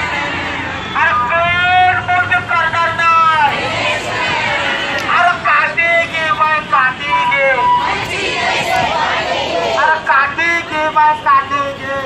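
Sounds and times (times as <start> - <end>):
protesters shouting slogans: 0.0 - 12.0.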